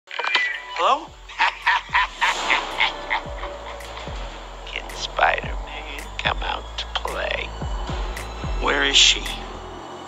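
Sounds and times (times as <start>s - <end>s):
low electronic hum: 1.0s - 9.8s
falling bass sweep: 1.2s - 9.9s
man cackling laugh: 1.3s - 4.2s.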